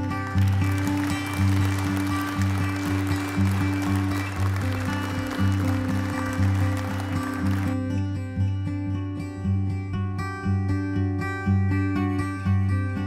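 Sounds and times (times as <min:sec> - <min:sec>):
gentle acoustic guitar music: 0:00.0 - 0:13.0
audience applause: 0:00.4 - 0:07.9.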